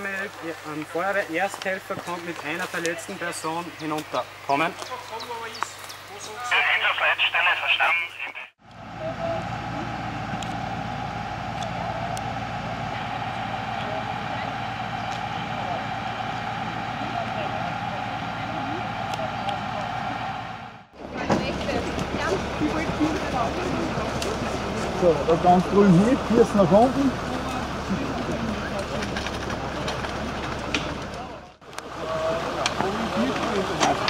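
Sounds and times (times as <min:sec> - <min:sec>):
indistinct voices: 0:03.1 - 0:09.8, 0:13.0 - 0:34.0
fire engine droning: 0:06.5 - 0:34.0.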